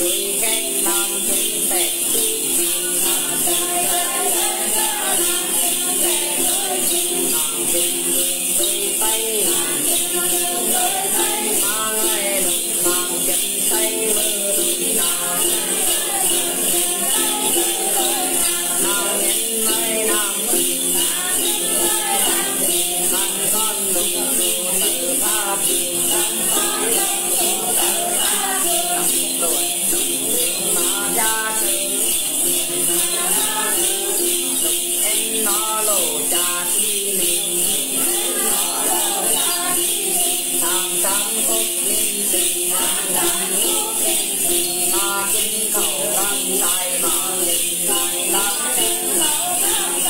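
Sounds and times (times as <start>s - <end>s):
bell rattles jingling: 0.0s - 50.0s
person singing: 0.0s - 50.0s
plucked lute: 0.0s - 50.0s.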